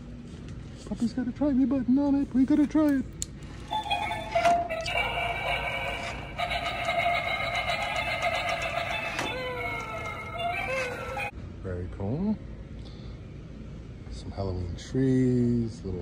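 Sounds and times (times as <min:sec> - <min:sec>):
toy sound effect through small speaker: 0:03.6 - 0:11.3.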